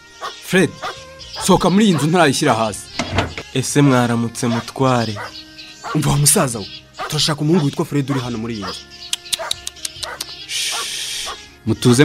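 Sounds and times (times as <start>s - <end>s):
background music chord: 0.0s - 12.0s
short sharp yelps or clicks: 9.2s - 11.4s.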